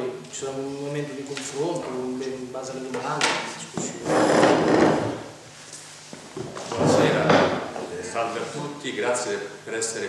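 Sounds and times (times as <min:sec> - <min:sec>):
microphone rubbing and knocking: 0:03.8 - 0:05.4.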